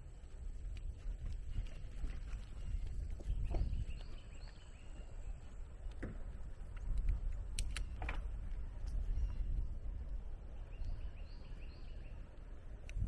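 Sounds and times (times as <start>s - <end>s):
bicycle rolling: 0.0s - 13.0s
wind rumbling on microphone: 0.0s - 13.0s
sharp clicks: 5.8s - 9.0s
faint bird chirps: 8.8s - 9.8s, 10.4s - 12.4s.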